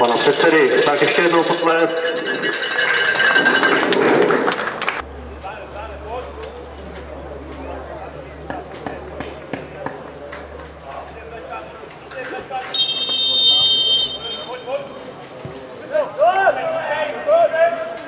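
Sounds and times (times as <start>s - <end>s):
crowd applauding: 3.4s - 5.0s
distant players shouting: 12.7s - 15.1s.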